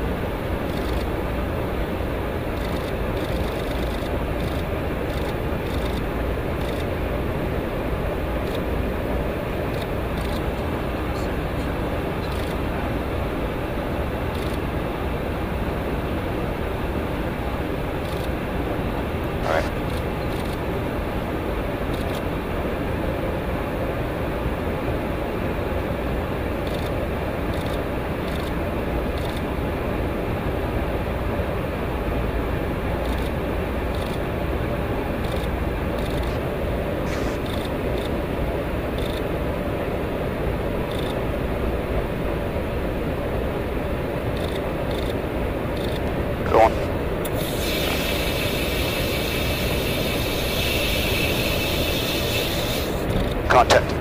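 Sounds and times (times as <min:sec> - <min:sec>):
airflow and engine noise: 0:00.0 - 0:54.0.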